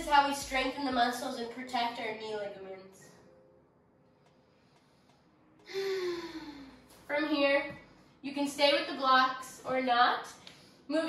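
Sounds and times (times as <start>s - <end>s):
woman sighing: 5.6s - 6.8s.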